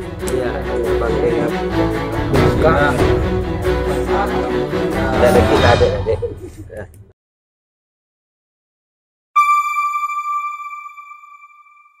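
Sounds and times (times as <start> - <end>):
bright chime note: 9.4 - 12.0.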